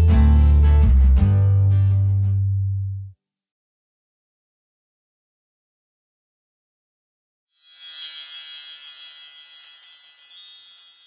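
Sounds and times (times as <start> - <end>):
glittering bell-like chimes: 7.6 - 11.0.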